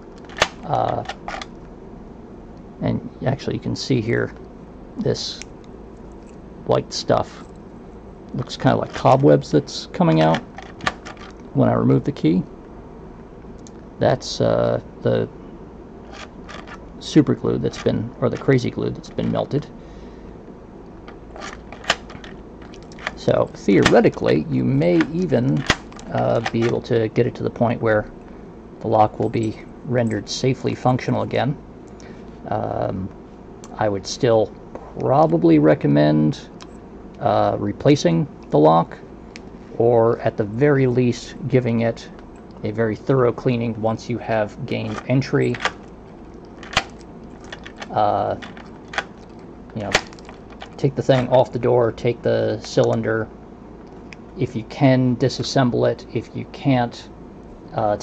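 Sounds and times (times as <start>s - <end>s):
key working in lock: 0.1s - 1.6s, 8.4s - 11.5s, 16.1s - 16.9s, 21.1s - 27.0s, 44.7s - 51.3s
sharp metallic lock click: 0.2s - 1.5s, 46.6s - 50.8s
key scraping into lock: 16.1s - 16.8s, 21.1s - 23.2s, 46.6s - 50.8s.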